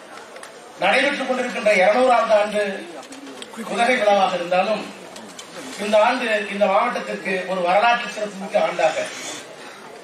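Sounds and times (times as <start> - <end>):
man speaking into a microphone: 0.8 - 5.0, 5.6 - 9.4.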